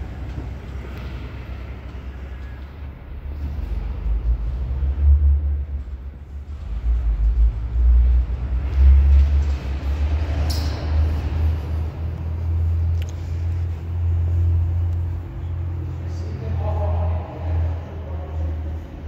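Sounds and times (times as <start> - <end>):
low uneven rumble: 0.0 - 19.0.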